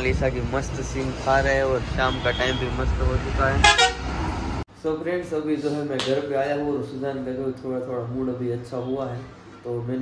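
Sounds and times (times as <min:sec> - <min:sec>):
street traffic rumble: 0:00.0 - 0:05.9
vehicle horn honk: 0:03.5 - 0:04.1.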